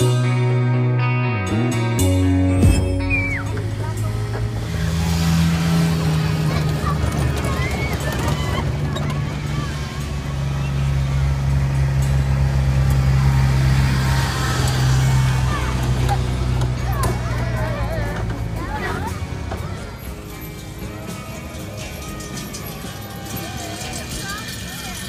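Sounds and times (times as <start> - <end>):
small vehicle engine humming: 1.4 - 25.0
riders' voices: 5.5 - 11.1, 14.6 - 25.0.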